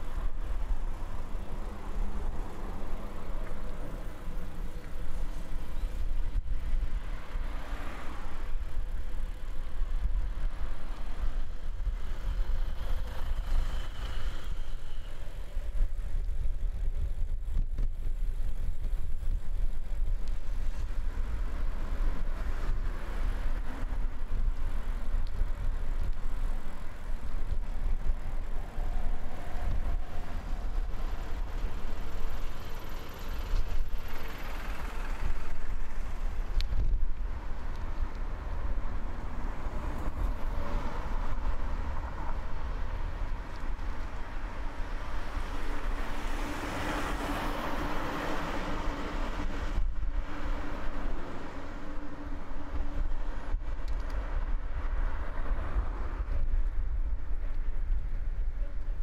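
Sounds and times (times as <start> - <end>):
constant low rumble: 0.0 - 59.0
vehicles driving past: 0.0 - 59.0.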